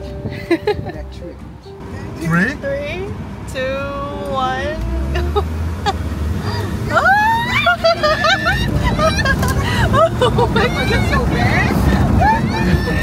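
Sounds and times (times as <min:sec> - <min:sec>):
vehicle rumbling on dirt road: 0:00.0 - 0:13.0
people calling out and laughing: 0:04.4 - 0:13.0.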